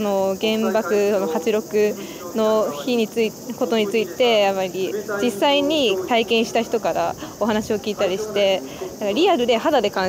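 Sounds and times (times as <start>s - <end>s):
cicadas droning: 0.0s - 10.0s
woman speaking: 0.0s - 10.0s.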